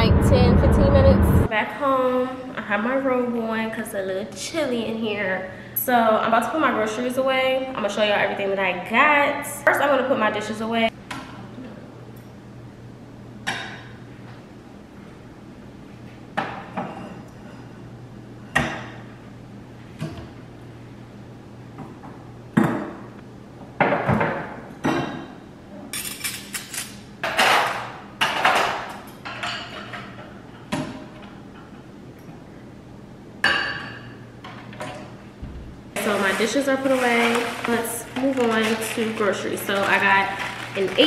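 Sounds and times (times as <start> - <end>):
dishes clinking on shelves: 13.4 - 14.0, 16.4 - 17.8, 23.8 - 31.0, 33.4 - 35.1.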